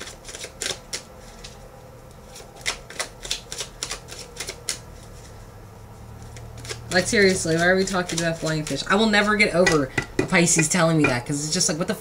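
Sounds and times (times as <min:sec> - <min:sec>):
cards shuffling and clicking: 0:00.0 - 0:01.6, 0:02.2 - 0:05.4, 0:06.1 - 0:09.9.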